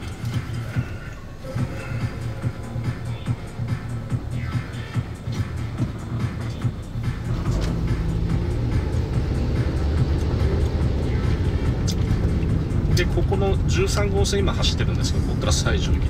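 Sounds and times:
car engine: 0:00.0 - 0:16.0
music playing: 0:00.0 - 0:16.0
road noise: 0:00.0 - 0:16.0.

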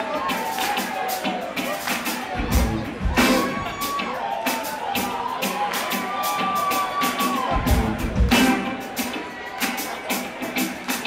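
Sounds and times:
crowd cheering: 0:00.0 - 0:11.0
live funk band playing: 0:00.0 - 0:11.0.

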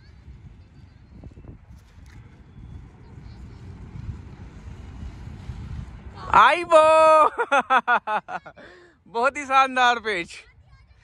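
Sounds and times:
wind buffeting microphone: 0:00.0 - 0:07.6, 0:09.3 - 0:11.0.

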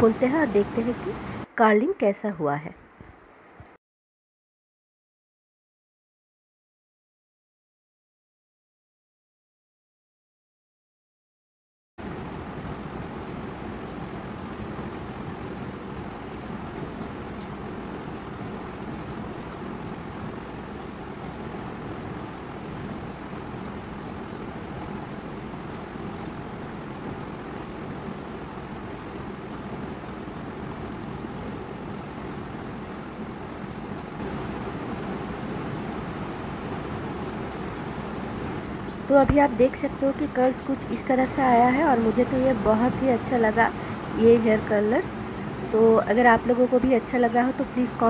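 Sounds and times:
steady background noise: 0:00.0 - 0:03.8, 0:12.0 - 0:48.0.

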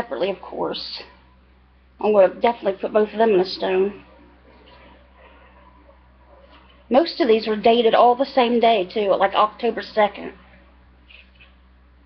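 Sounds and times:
woman speaking: 0:00.0 - 0:01.1, 0:02.0 - 0:04.9, 0:06.9 - 0:10.4
faint low hum: 0:00.0 - 0:12.0.

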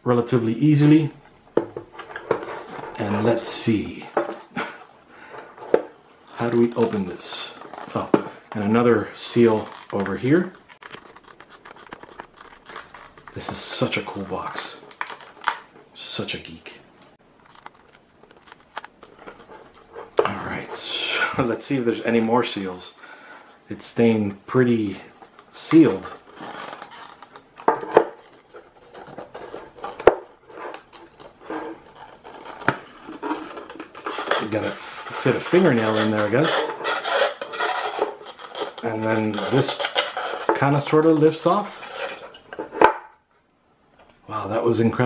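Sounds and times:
plastic box rubbing and scraping: 0:01.8 - 0:15.8, 0:17.2 - 0:23.1, 0:24.7 - 0:42.9.

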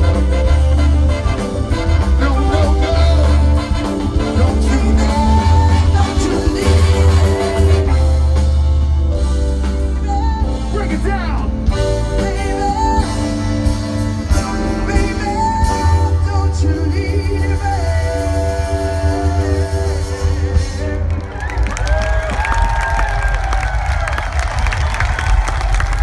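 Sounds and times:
heavy bass line: 0:00.0 - 0:21.6
drum and bass band playing: 0:00.0 - 0:26.0
person singing: 0:01.6 - 0:08.6, 0:09.6 - 0:21.3
crowd cheering and whooping: 0:20.8 - 0:26.0.

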